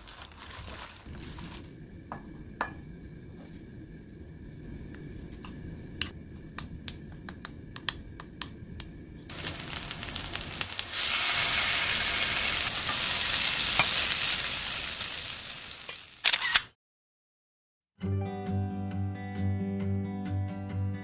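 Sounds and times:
wooden spoon stirring in steel bowl: 0:00.0 - 0:01.7
oil sizzling in a pan: 0:09.2 - 0:16.2.

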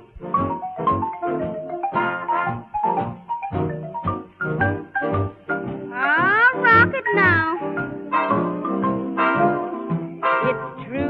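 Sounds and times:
swing band playing: 0:00.0 - 0:11.0.

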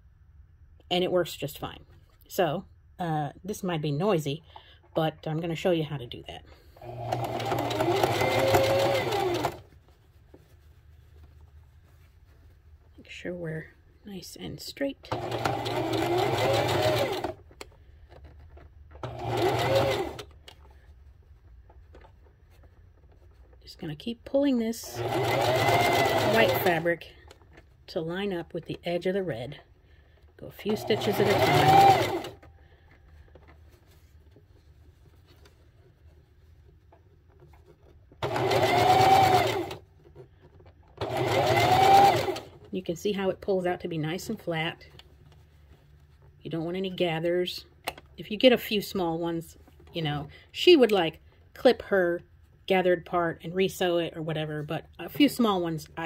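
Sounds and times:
sewing machine stitching: 0:06.7 - 0:09.7, 0:15.0 - 0:20.7, 0:24.8 - 0:27.1, 0:30.5 - 0:32.5, 0:38.2 - 0:42.7.

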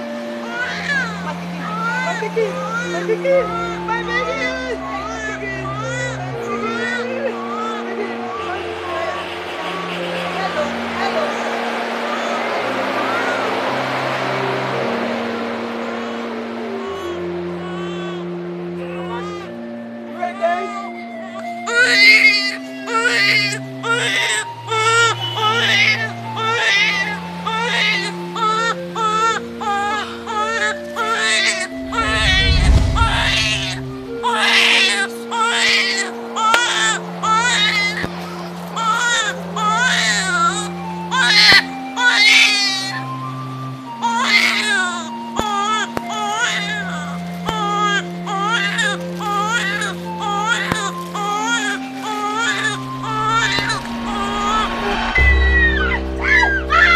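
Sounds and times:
background music with held notes: 0:00.0 - 0:56.9
infant crying: 0:00.4 - 0:09.2, 0:16.8 - 0:19.6, 0:20.2 - 0:56.9.

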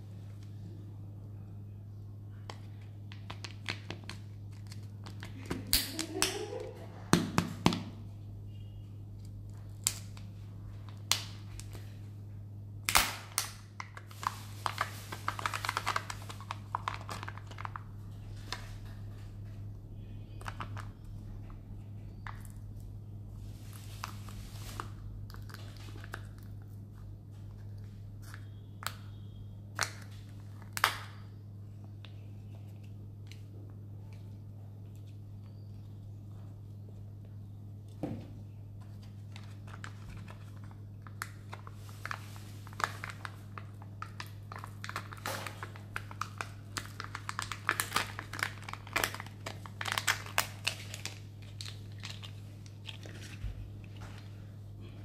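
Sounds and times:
low steady hum: 0:00.0 - 0:55.0
plastic wrapper crinkling and tearing: 0:02.5 - 0:06.6, 0:12.8 - 0:19.6, 0:23.6 - 0:28.9, 0:38.8 - 0:54.4.

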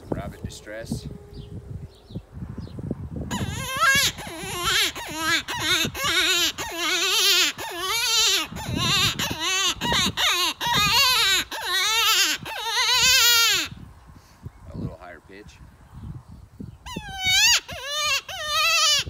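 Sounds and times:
predator hand call wailing cries: 0:03.3 - 0:13.8, 0:16.9 - 0:19.0.

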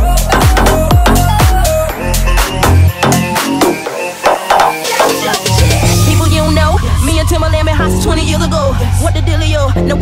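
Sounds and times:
deep bass: 0:00.0 - 0:03.8, 0:04.5 - 0:10.0
electronic house music: 0:00.0 - 0:10.0.

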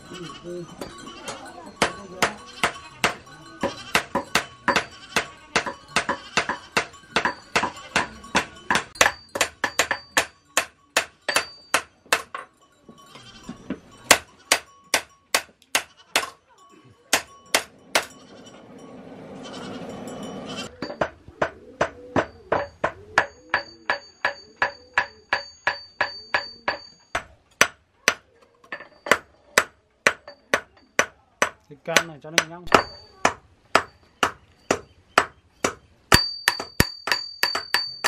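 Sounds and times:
goat bleating: 0:00.0 - 0:06.9, 0:13.2 - 0:13.7, 0:15.8 - 0:16.2, 0:19.4 - 0:20.7
hammer striking blade on anvil: 0:01.8 - 0:12.5, 0:14.1 - 0:16.4, 0:17.1 - 0:18.2, 0:20.8 - 0:27.8, 0:28.7 - 0:38.0.

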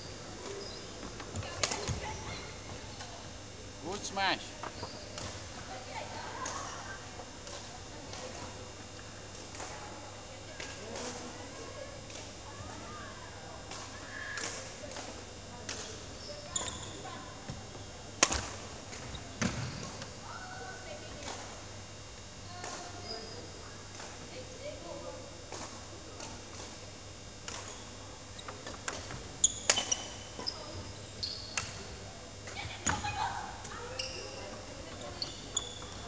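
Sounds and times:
shoe squeaks on wooden floor: 0:16.2 - 0:17.0, 0:29.4 - 0:31.6, 0:33.9 - 0:36.0.

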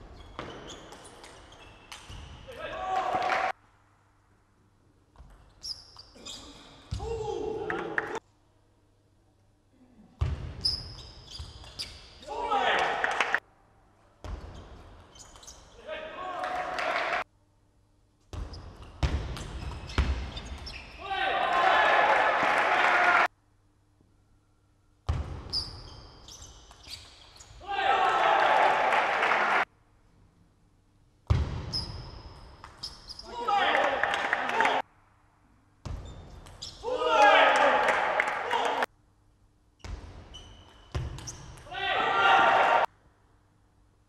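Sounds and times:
people shouting: 0:21.0 - 0:23.3, 0:27.6 - 0:29.6, 0:36.8 - 0:38.8, 0:41.7 - 0:42.9.

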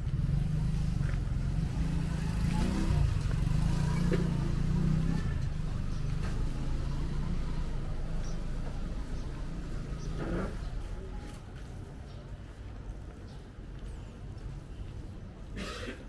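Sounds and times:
vehicle engine passing: 0:00.0 - 0:10.9.

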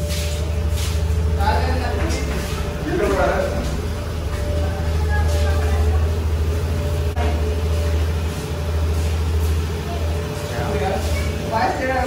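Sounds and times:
scooter engine idling: 0:00.0 - 0:12.0.

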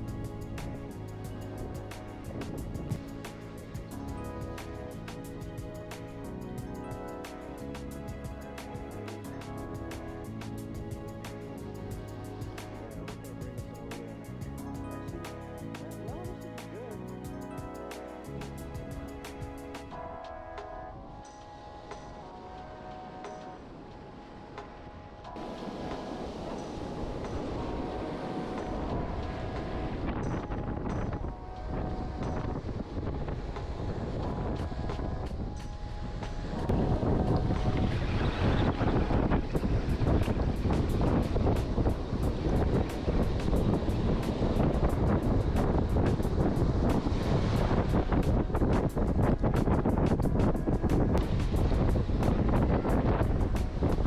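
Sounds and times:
wind buffeting microphone: 0:00.0 - 0:20.1, 0:20.9 - 0:54.0
background music: 0:00.0 - 0:54.0
surf: 0:21.4 - 0:54.0
waves washing up beach: 0:21.5 - 0:54.0.

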